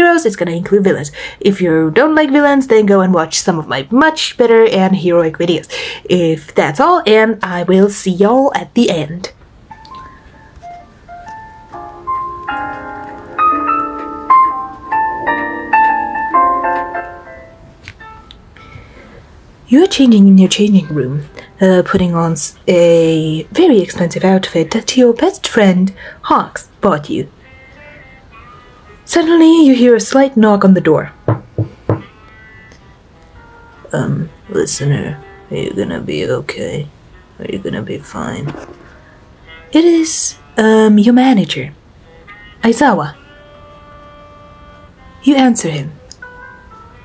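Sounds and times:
piano music: 0:09.6 - 0:24.8, 0:26.3 - 0:41.0, 0:42.0 - 0:47.0
knocks on a door: 0:31.2 - 0:32.1.

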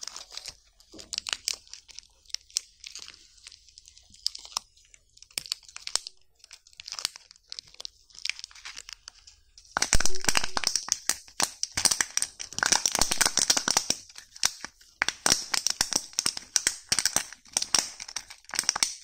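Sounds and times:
plastic packaging crinkling: 0:00.0 - 0:19.0.

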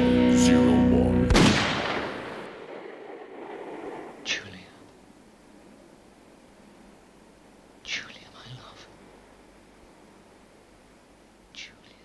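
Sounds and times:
person whispering: 0:04.2 - 0:04.9, 0:07.8 - 0:09.0, 0:11.5 - 0:12.0.

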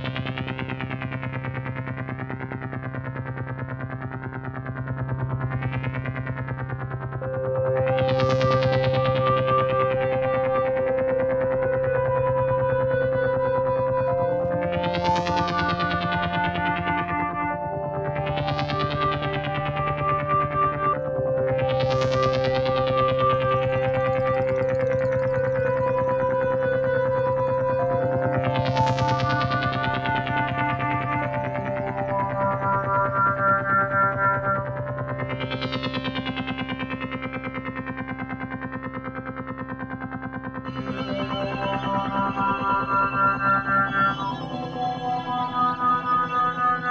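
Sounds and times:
ambient synthesizer drone chords: 0:00.0 - 0:46.9.

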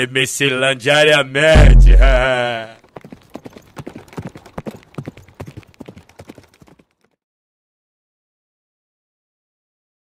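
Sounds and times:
horse hooves clip-clopping: 0:02.8 - 0:07.2.

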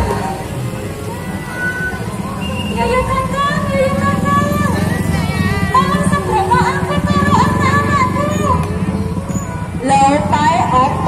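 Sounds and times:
amplified music: 0:00.0 - 0:11.0
motorcycles riding past: 0:00.0 - 0:11.0
voice over loudspeaker: 0:02.7 - 0:11.0.

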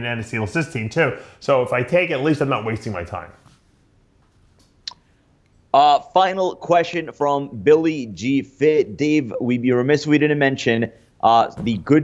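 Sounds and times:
man speaking: 0:00.0 - 0:03.5, 0:05.7 - 0:12.0.

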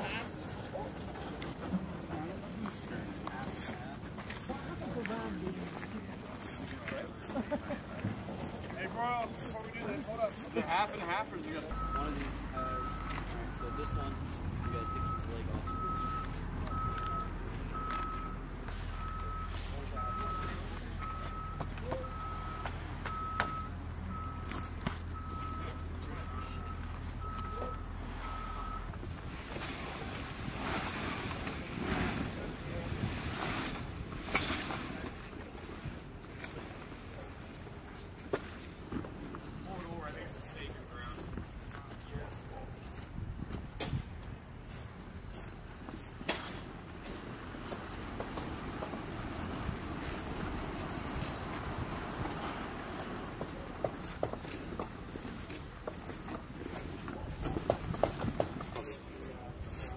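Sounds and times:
reversing beeper: 0:11.7 - 0:29.0
rustling and knocking handling noises: 0:53.3 - 0:59.1.

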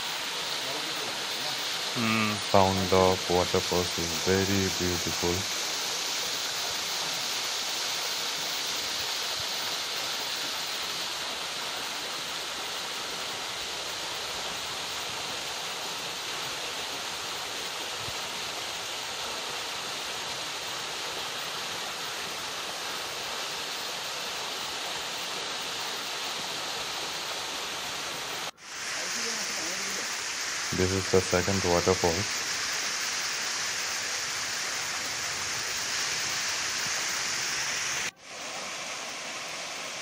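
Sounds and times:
waterfall splashing over rocks: 0:00.0 - 0:40.0.

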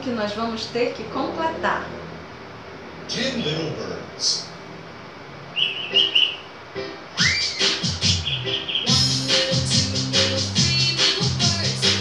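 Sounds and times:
short high chirp: 0:05.6 - 0:06.5, 0:07.2 - 0:09.0
children's song with a beat: 0:07.3 - 0:08.3, 0:08.9 - 0:12.0.

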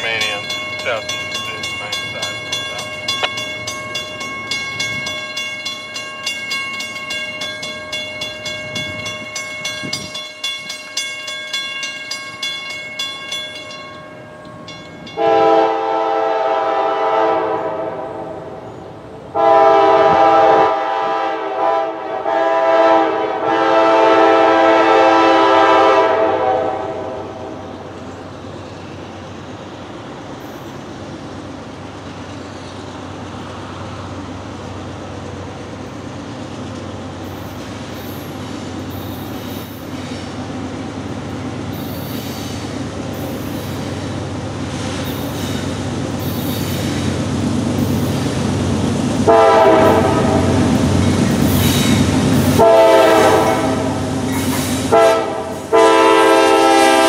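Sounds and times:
locomotive air horn blasts: 0:15.2 - 0:18.4, 0:19.3 - 0:27.5, 0:49.2 - 0:50.6, 0:52.5 - 0:54.1, 0:54.9 - 0:57.0.

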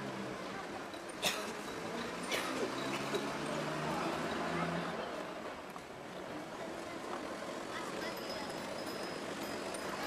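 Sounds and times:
street background rumble: 0:00.0 - 0:10.0.

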